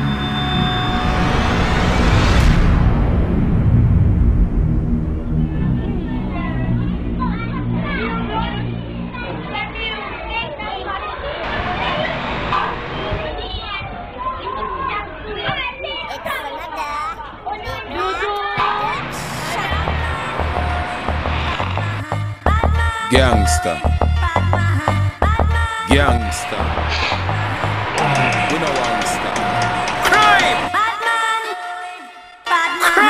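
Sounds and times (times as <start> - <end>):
low rumble: 0.8 - 9.6, 19.6 - 23.0
many voices chattering and calling out: 5.5 - 21.7, 27.4 - 31.5.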